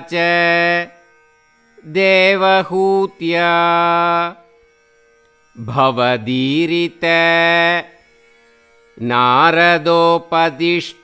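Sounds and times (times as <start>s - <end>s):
man chanting melodically: 0.0s - 1.0s, 1.8s - 4.4s, 5.6s - 8.0s, 9.0s - 11.0s.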